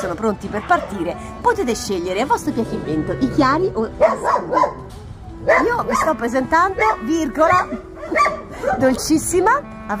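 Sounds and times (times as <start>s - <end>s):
dog barking: 4.0s - 6.2s, 6.8s - 9.3s.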